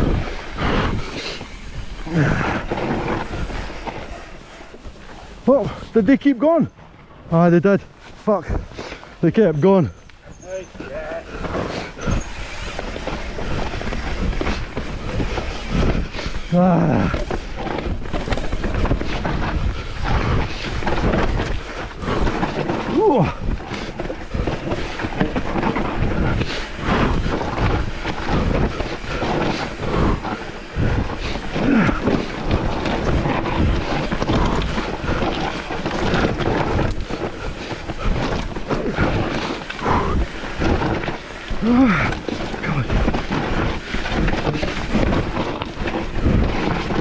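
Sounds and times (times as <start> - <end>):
bike frame and chain rattling: 0.0 - 47.0
bike tyres rolling over dirt: 0.0 - 47.0
wind buffeting microphone: 0.0 - 47.0.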